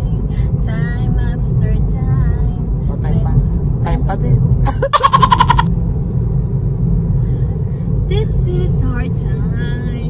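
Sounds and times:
road rumble inside car: 0.0s - 10.0s
rapid high-pitched pulsing: 5.0s - 5.7s.

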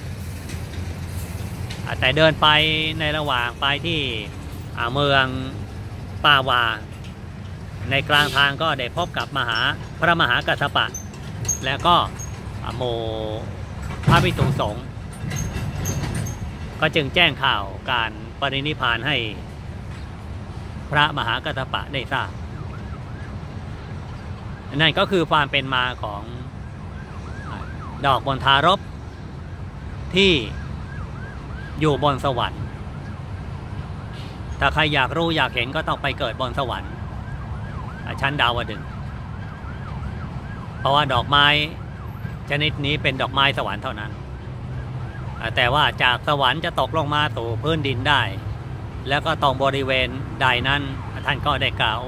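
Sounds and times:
man speaking: 1.8s - 6.9s, 7.8s - 11.0s, 11.6s - 14.9s, 16.8s - 19.4s, 20.9s - 22.3s, 24.7s - 26.6s, 27.5s - 28.8s, 30.1s - 30.6s, 31.8s - 32.7s, 34.6s - 37.0s, 38.1s - 38.8s, 40.8s - 41.8s, 42.5s - 44.1s, 45.4s - 48.4s, 49.0s - 52.0s
faint sweeping siren-like tone: 7.8s - 12.8s, 21.2s - 47.4s, 49.1s - 52.0s.

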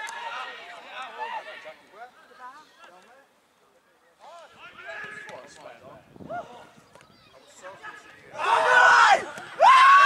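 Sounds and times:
players shouting and calling: 0.0s - 3.4s, 4.1s - 10.0s.

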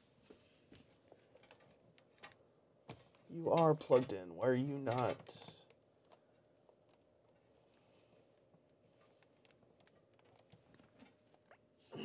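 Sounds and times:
person speaking: 3.3s - 5.7s.

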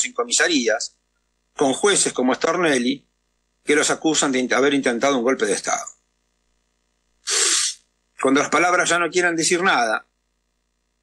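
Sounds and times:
man taking sharp breath: 7.2s - 7.8s.

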